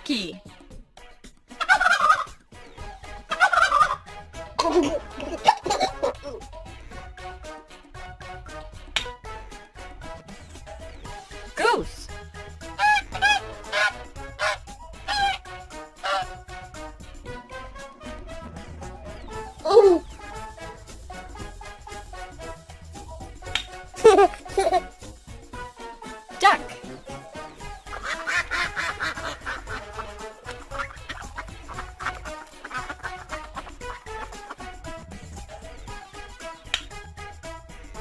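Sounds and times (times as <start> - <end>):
cheerful children's music: 0.0 - 38.0
duck quacking: 1.6 - 2.3, 3.3 - 4.0, 12.7 - 15.4, 16.0 - 16.4, 27.4 - 34.8
goose honking: 3.3 - 4.0, 12.7 - 16.4.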